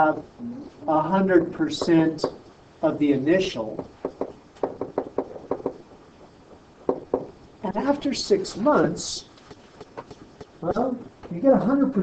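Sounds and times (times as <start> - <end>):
stylus tapping on whiteboard: 1.3 - 2.4, 3.7 - 5.8, 6.8 - 7.4, 9.5 - 10.6.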